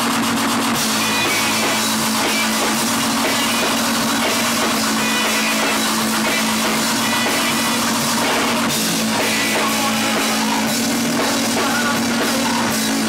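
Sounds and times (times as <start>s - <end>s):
drum kit: 0.0s - 13.0s
electric guitar: 0.0s - 13.0s
rock band playing loud: 0.0s - 13.0s.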